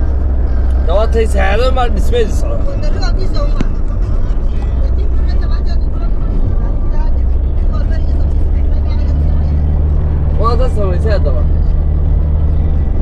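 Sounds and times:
car engine rumble inside cabin: 0.0 - 13.0
tyres on paved road: 0.0 - 13.0.

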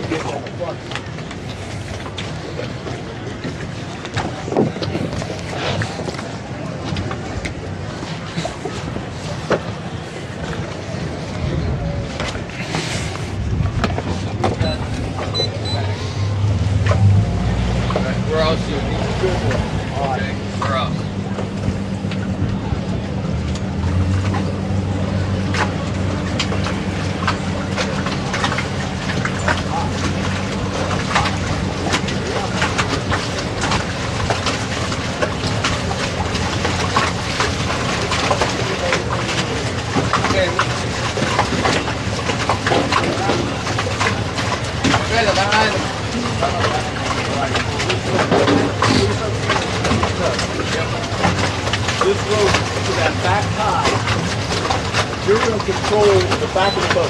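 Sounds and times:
boat engine humming: 0.0 - 57.0.

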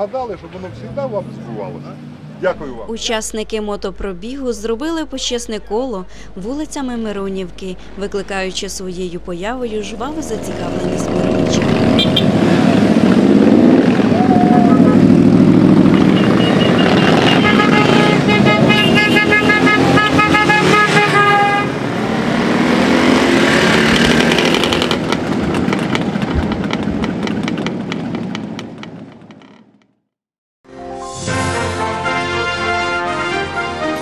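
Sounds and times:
motorcycles riding past: 9.8 - 29.3
horn tooting: 9.9 - 13.0, 14.0 - 22.0, 31.2 - 34.0.

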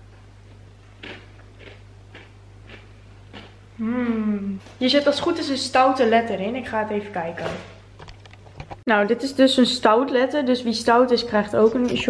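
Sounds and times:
quiet crunchy chewing: 0.4 - 3.6.

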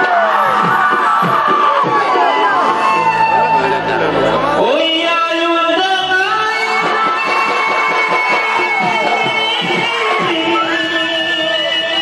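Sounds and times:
loud live stage music: 0.0 - 12.0.

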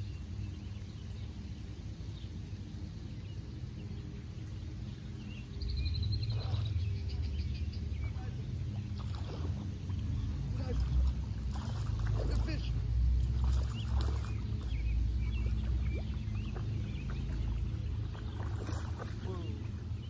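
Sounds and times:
faint bird chirps: 3.0 - 20.0.

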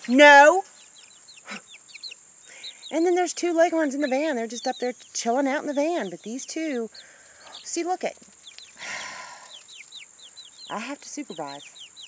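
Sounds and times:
chicks peeping: 0.0 - 12.0
high insect drone: 0.1 - 12.0.

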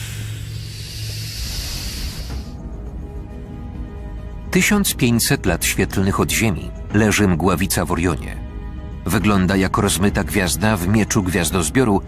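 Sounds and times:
rushing hiss: 0.0 - 2.6
low music drone: 0.0 - 12.0.

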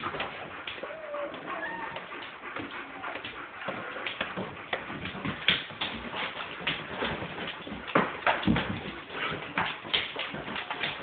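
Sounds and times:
dog whimpering: 0.8 - 4.1
dog claws scrabbling on wood floor: 3.7 - 11.0.

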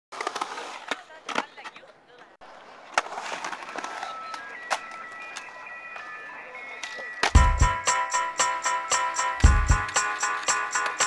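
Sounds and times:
skateboard clacking on ground: 0.1 - 1.9
skateboard rolling on concrete: 0.1 - 11.0.

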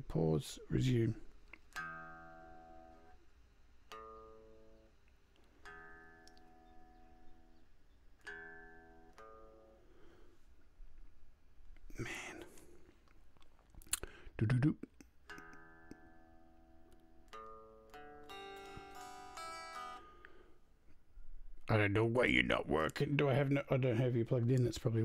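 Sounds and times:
unplugged electric guitar notes: 1.7 - 3.2, 3.9 - 10.2, 15.2 - 20.4.

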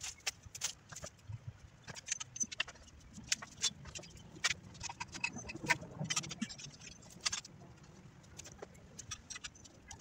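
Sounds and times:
dry branches crackling and snapping: 0.0 - 5.0.

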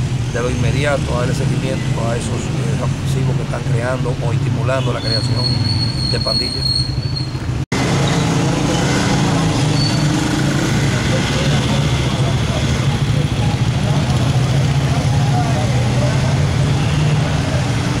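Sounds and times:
vehicle engine idling: 0.0 - 18.0
people talking: 0.4 - 6.7, 10.7 - 17.8.

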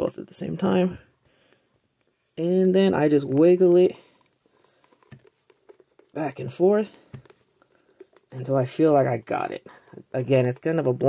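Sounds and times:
small clicks and rubbing of doll joint: 4.0 - 6.2, 6.8 - 8.4.

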